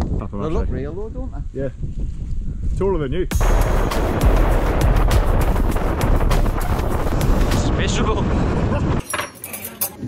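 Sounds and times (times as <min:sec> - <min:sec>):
wind buffeting microphone: 0:00.0 - 0:09.0
music playing: 0:03.3 - 0:07.9.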